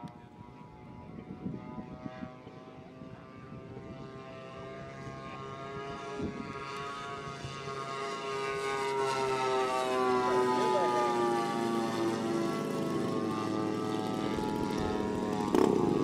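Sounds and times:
model plane propeller engines: 0.0 - 16.0.

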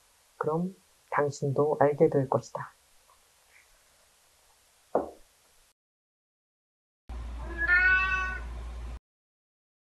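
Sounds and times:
cat meowing: 7.4 - 8.5.

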